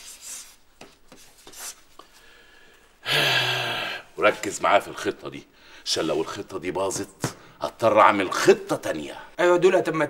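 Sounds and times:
man's breathy exclamation: 3.0 - 4.2.

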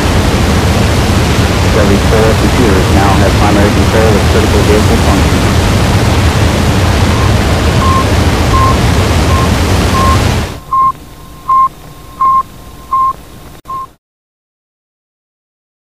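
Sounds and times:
loud rushing noise: 0.0 - 10.8
short beeps: 7.1 - 13.9.

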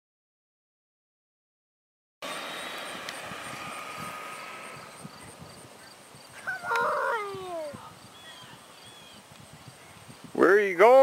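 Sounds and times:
electric motor whine: 2.2 - 6.3
high-pitched falling cry: 6.4 - 7.8.

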